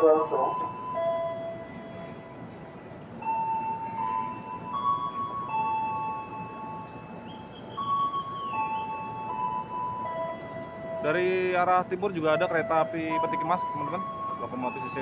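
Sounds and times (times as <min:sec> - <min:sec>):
chime-like electronic melody: 0:03.2 - 0:11.6, 0:12.3 - 0:15.0.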